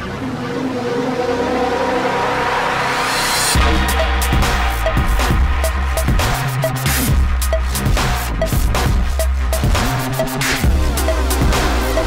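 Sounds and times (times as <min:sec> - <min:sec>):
layered synth drone: 0:00.0 - 0:12.0
hissing riser: 0:00.2 - 0:07.1.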